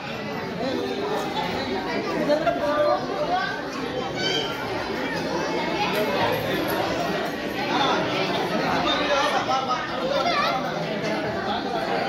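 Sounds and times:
women and children chattering: 0:00.0 - 0:12.0.

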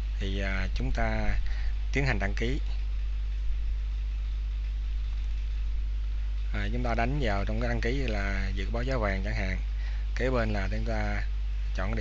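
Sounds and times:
low hum with faint hiss: 0:00.0 - 0:12.0.

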